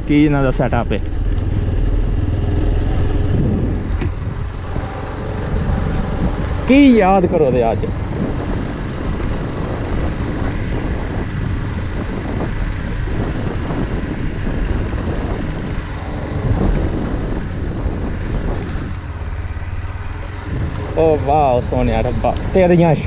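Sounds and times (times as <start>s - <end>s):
motorcycle engine cruising: 0.0s - 23.0s
wind and tyre rumble: 0.0s - 23.0s.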